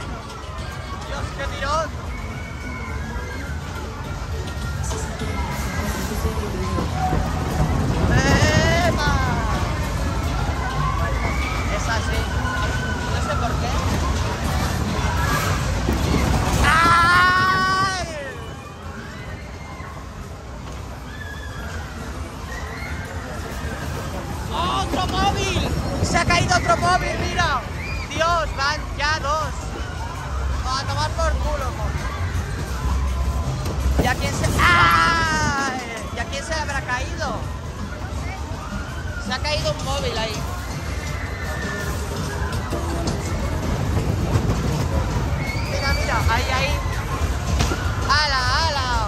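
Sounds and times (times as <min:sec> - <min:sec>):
ride cars rumbling: 0:00.0 - 0:49.0.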